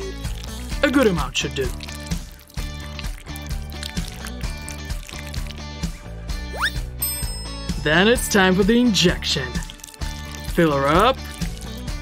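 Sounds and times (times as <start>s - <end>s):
background music with steady beat: 0.0s - 12.0s.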